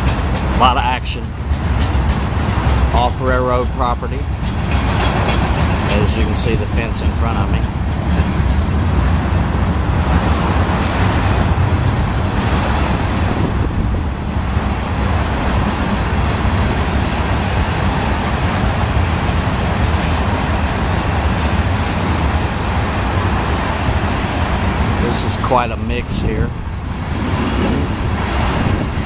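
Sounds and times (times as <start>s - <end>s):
train wheels rumbling on rails: 0.0s - 29.0s.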